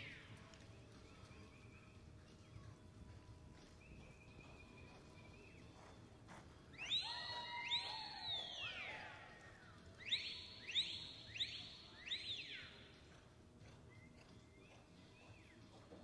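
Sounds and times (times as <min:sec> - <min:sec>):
spectators whistling: 0:06.7 - 0:09.3, 0:10.0 - 0:12.9.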